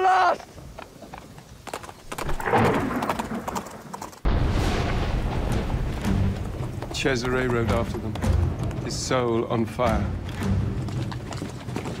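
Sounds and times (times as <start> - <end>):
horses' hooves: 0.0 - 4.3, 5.3 - 12.0
thunder crack and rumble: 2.2 - 8.2
film music: 4.3 - 12.0.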